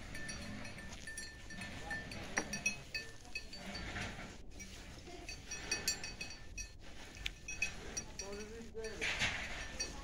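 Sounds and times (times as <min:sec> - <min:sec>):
light metallic clinks: 0:00.0 - 0:10.0.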